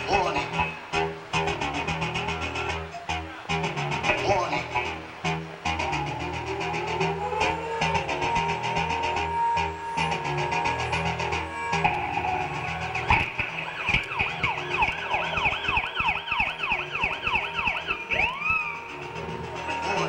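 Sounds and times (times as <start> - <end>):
live band music: 0.0 - 20.0.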